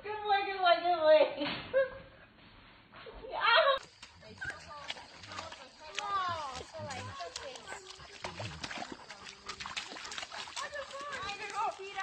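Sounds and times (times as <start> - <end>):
dog splashing in mud: 3.8 - 12.0
person speaking: 4.2 - 8.6.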